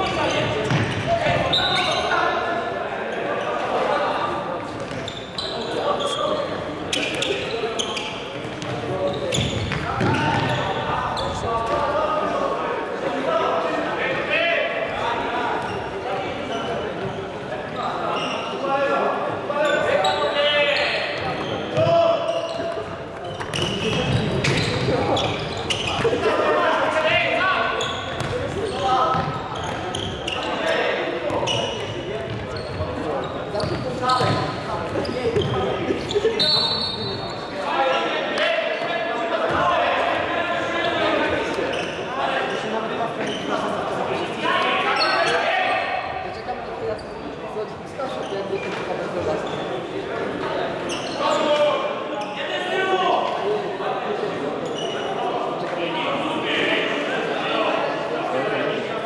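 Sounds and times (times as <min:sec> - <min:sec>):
shoe squeak: 0:00.0 - 0:02.4, 0:04.8 - 0:11.5, 0:15.6 - 0:18.6, 0:19.6 - 0:26.4, 0:27.4 - 0:38.2, 0:41.6 - 0:42.1, 0:43.2 - 0:43.7, 0:44.5 - 0:47.4, 0:48.0 - 0:50.0, 0:50.8 - 0:52.4, 0:54.6 - 0:55.8.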